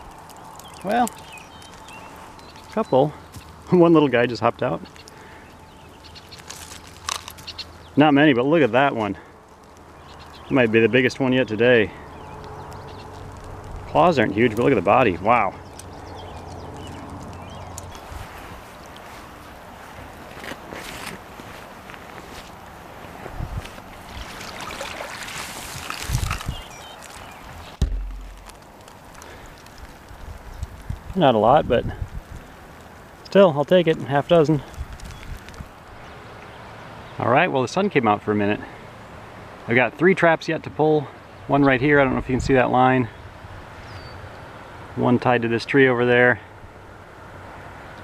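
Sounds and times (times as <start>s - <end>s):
water splashing and running off: 0.0s - 2.8s, 23.6s - 34.9s
rustling and handling noise: 4.9s - 7.8s, 15.8s - 31.1s
sharp knock: 27.8s - 28.5s.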